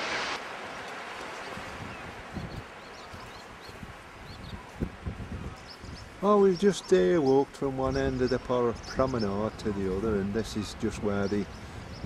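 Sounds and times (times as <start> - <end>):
surf: 0.0 - 11.5
wind: 0.0 - 12.0.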